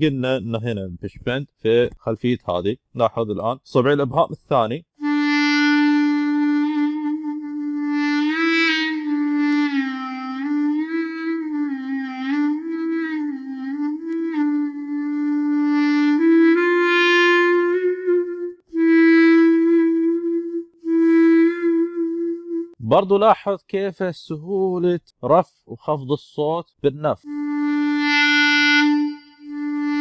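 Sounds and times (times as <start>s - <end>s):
clarinet note bending: 5.0s - 22.8s, 27.2s - 30.0s.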